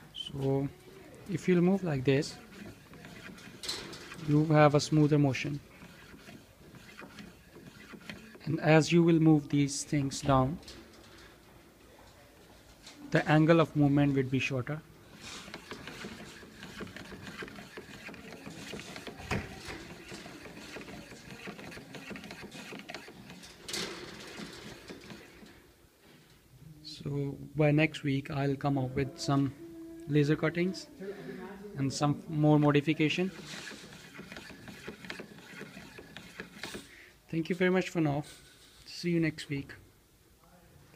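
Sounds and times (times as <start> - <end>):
wooden model rattling and clicking: 2.4 - 4.4, 15.4 - 25.4.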